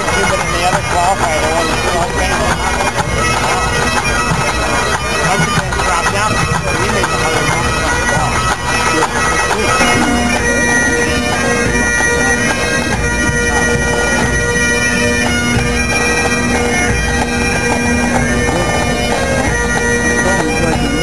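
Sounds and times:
bagpipes playing: 0.0s - 21.0s.

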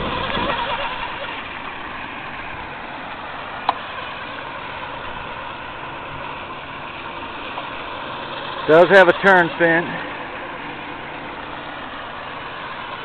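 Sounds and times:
small electric boat motor running: 0.0s - 13.0s.

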